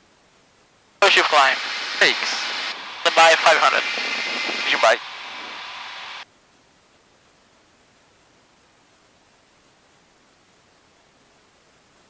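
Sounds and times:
intercom hiss: 1.0 - 6.2.

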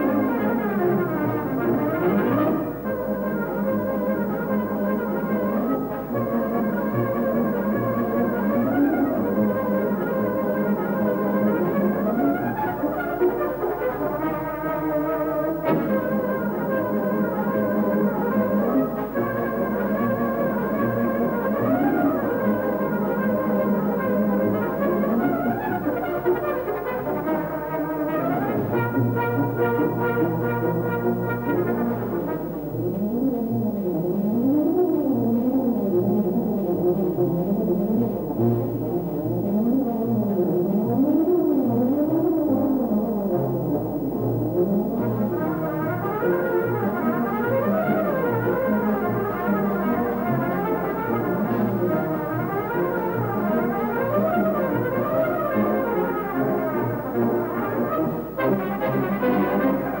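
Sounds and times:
brass band playing: 0.0 - 34.1, 43.3 - 60.0
tuba playing quick runs: 0.0 - 60.0.

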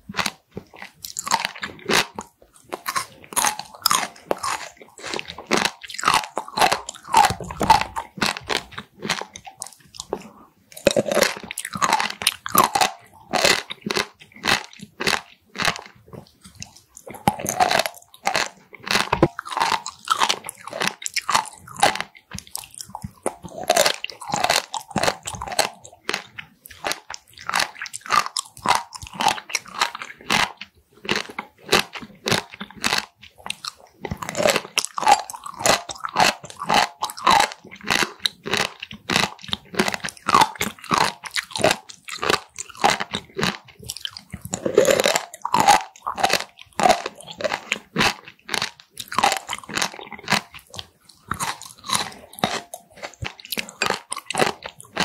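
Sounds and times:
close chewing with clicking bites: 0.0 - 55.0.

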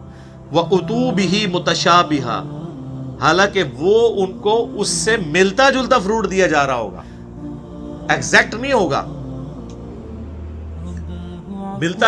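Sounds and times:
soft drone music: 0.0 - 12.0
man speaking: 0.5 - 2.5, 3.2 - 7.0, 8.1 - 9.2.

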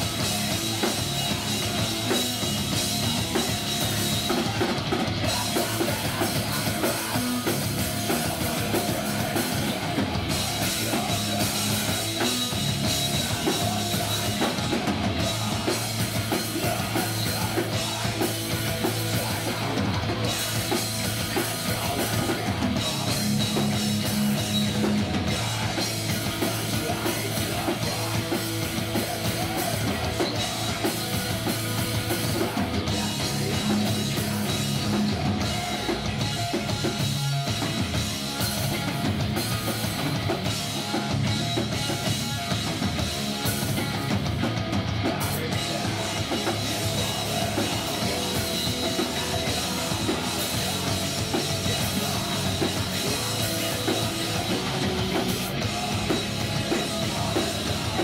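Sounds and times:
bass guitar: 0.0 - 58.0
distorted electric guitar: 0.0 - 58.0
drum kit: 0.0 - 58.0.

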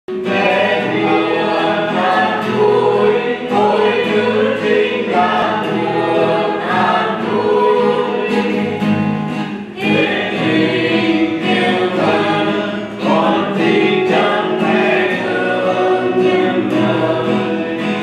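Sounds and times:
acoustic guitar: 0.1 - 18.0
choir singing a hymn: 0.1 - 18.0.

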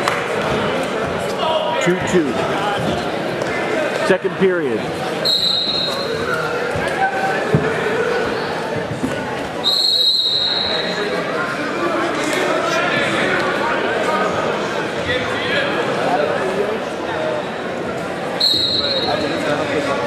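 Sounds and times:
crowd chatter echoing: 0.0 - 20.0
shrill referee's whistle: 5.2 - 6.2, 9.6 - 11.0, 18.4 - 19.3.

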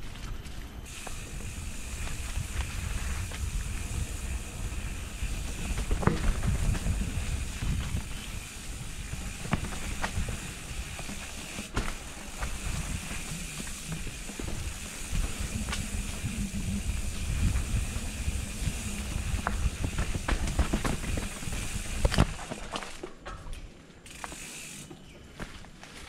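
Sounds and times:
bike tyres rumbling over dirt: 0.0 - 23.2
bike rattling over bumps: 0.8 - 24.9
wind on microphone: 0.9 - 11.2, 12.6 - 22.3.

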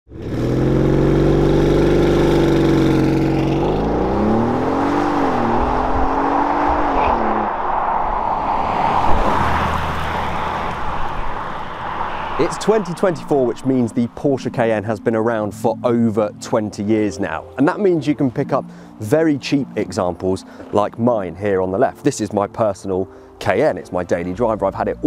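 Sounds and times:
car engine accelerating: 0.1 - 14.2
tyre and road noise: 0.1 - 15.0.

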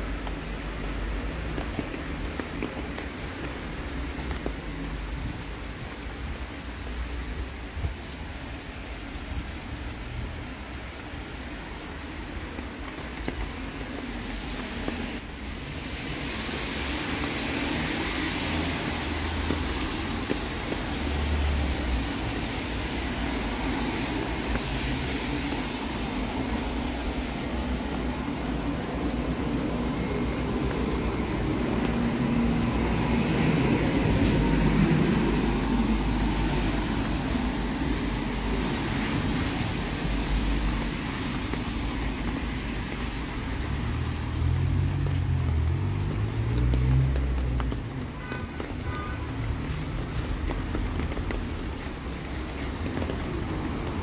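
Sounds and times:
cars driving on wet road: 0.0 - 54.0.

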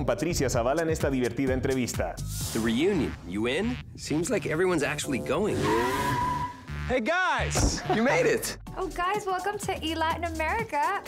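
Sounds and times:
background music: 0.0 - 11.0
car tyres squealing: 5.4 - 6.8.

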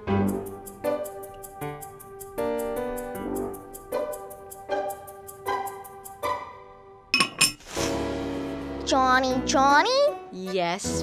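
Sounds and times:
ceramic lid clinking against jar: 7.2 - 7.6.

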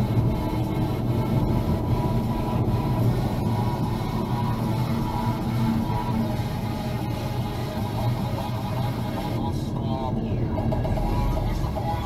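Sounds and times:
car engine and tyre rumble: 0.0 - 12.0
faint music playing: 0.0 - 12.0.

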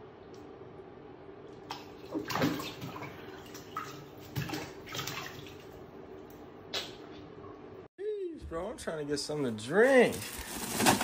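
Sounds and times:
bathtub water splashing: 1.5 - 5.9.

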